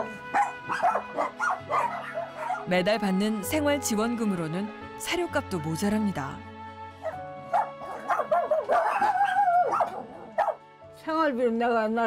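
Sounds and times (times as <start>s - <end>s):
dogs barking and yipping: 0.0s - 2.7s, 7.0s - 10.6s
dog whining howl: 7.6s - 10.6s.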